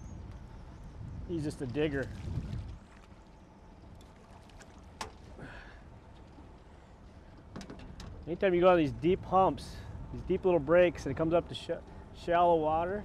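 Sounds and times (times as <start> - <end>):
low water noise: 0.0 - 13.0.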